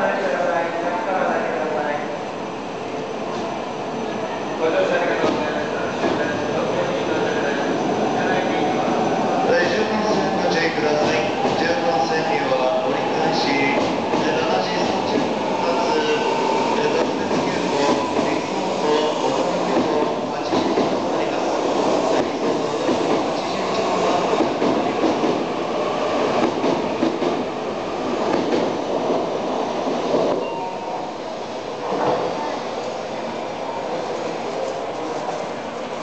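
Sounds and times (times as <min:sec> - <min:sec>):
train wheels rumbling: 0:04.8 - 0:30.5
rail clicks: 0:09.8 - 0:25.5, 0:28.2 - 0:30.5.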